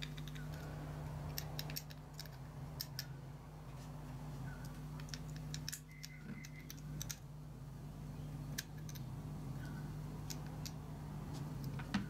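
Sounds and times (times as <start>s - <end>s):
metal parts clicking: 0.0s - 3.2s, 4.6s - 7.3s, 8.5s - 10.8s
steady low hum: 0.0s - 12.0s.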